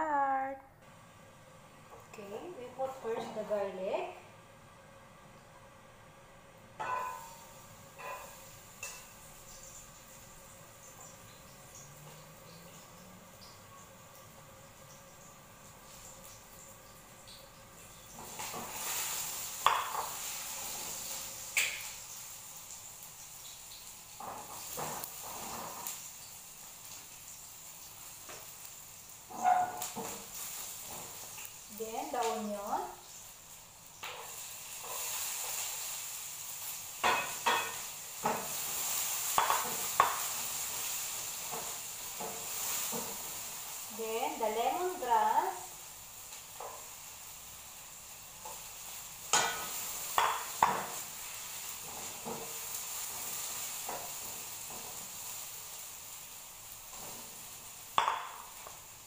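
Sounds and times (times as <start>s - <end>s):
garlic sizzling in a frying pan: 0.0s - 59.0s
spatula scraping and tapping pan: 6.8s - 9.9s, 18.0s - 22.1s, 24.2s - 26.3s, 29.3s - 31.5s, 34.0s - 36.0s, 37.0s - 43.5s, 46.6s - 46.9s, 49.3s - 55.4s.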